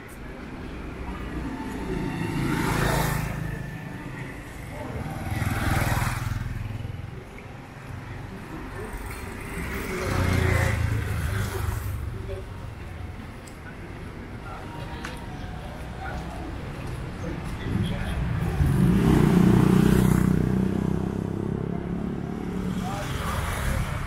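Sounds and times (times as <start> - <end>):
motorbikes passing close by: 1.2 - 7.4, 8.3 - 12.2, 17.2 - 24.0.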